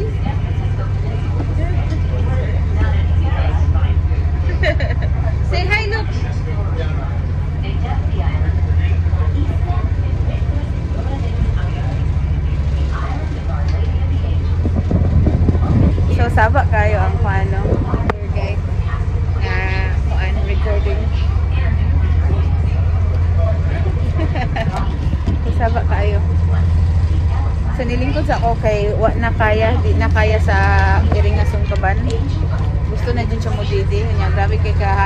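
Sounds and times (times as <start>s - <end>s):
boat engine humming: 0.0s - 35.0s.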